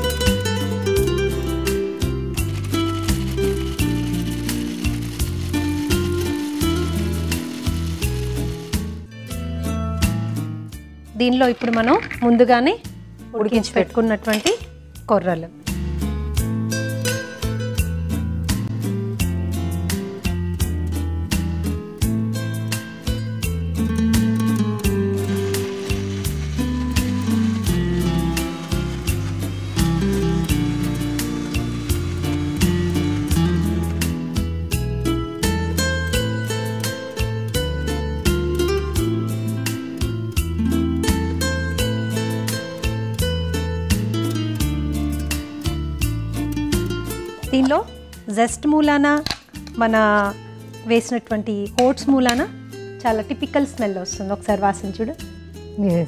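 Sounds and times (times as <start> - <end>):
background music plucked melody: 0.0 - 56.0
mixer grinder whirring: 25.1 - 33.4.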